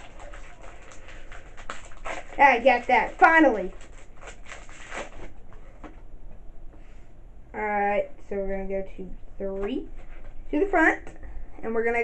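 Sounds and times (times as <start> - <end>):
trading cards rustling in hands: 0.0 - 5.9.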